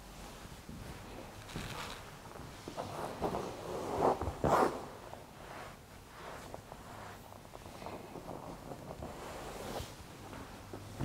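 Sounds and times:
clothing rustling: 0:00.0 - 0:11.0.

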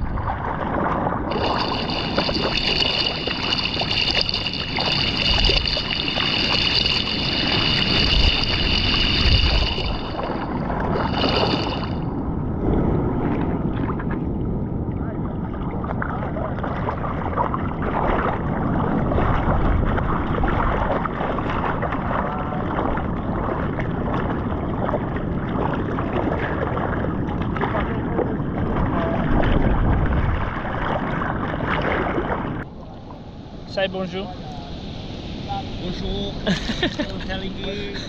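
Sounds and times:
water splashing against surfboard: 0:00.0 - 0:12.0, 0:15.5 - 0:32.7.

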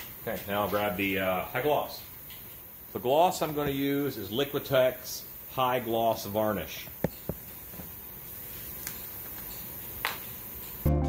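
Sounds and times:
steady low background noise: 0:00.0 - 0:11.0.

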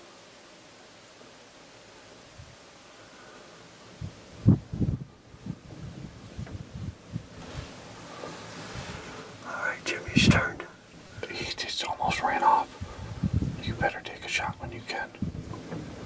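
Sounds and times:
low thuds: 0:04.0 - 0:09.0, 0:15.2 - 0:16.0
people whispering: 0:09.4 - 0:12.8, 0:13.6 - 0:15.2.

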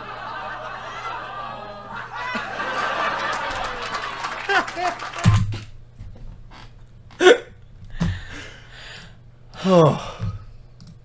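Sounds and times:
breathy exhale: 0:08.0 - 0:10.5.

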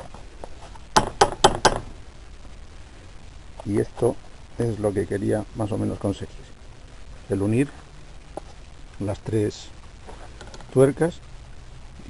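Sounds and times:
sharp metal knocks: 0:01.0 - 0:01.9.

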